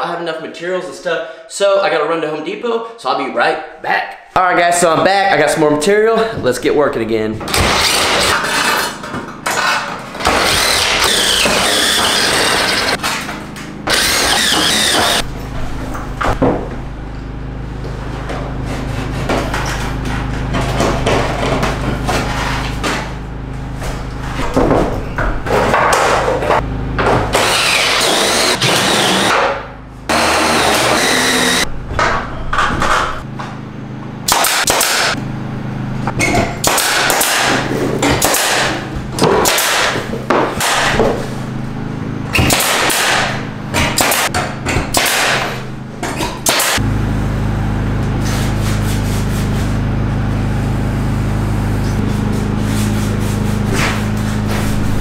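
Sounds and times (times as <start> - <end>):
drill driving screws into metal: 7.5 - 8.7, 10.3 - 13.0, 13.9 - 15.2, 27.4 - 29.4, 30.1 - 31.6
nail gun firing into wood: 34.3 - 35.1, 36.6 - 40.0, 40.6 - 41.0, 42.4 - 45.5, 46.4 - 46.8.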